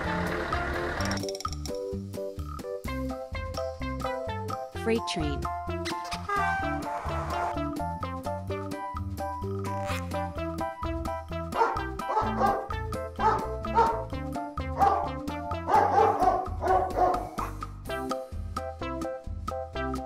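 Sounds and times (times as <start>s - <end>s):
children's music with bass line: 0.0s - 20.0s
toy dog barks: 13.2s - 14.0s, 14.7s - 17.3s.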